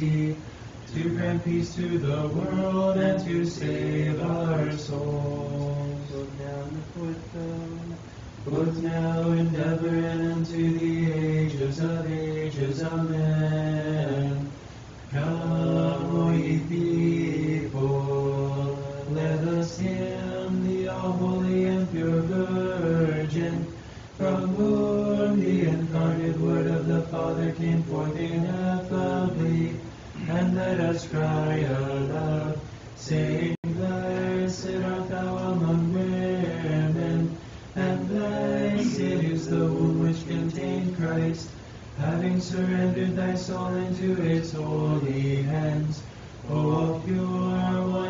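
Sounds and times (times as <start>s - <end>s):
voices chanting a hymn: 0.0s - 48.0s.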